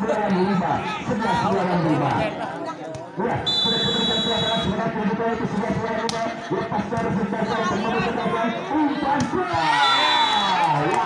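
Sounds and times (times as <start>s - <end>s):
referee's whistle blast: 3.5s - 4.7s, 9.8s - 10.6s.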